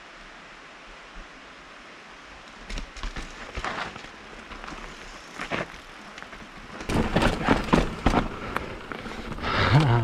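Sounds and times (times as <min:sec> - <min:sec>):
mountain bike rolling over dirt: 0:02.5 - 0:10.0
bike knocks and rattles: 0:06.7 - 0:09.4
rider grunting: 0:09.3 - 0:10.0.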